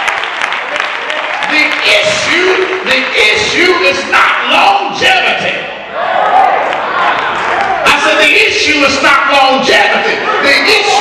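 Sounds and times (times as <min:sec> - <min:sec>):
congregation clapping: 0:00.0 - 0:03.6.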